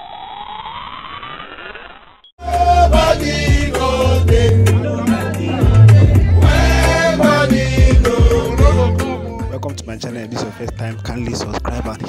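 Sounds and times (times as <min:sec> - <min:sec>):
synthetic rising whine: 0:00.0 - 0:02.3, 0:05.6 - 0:06.5.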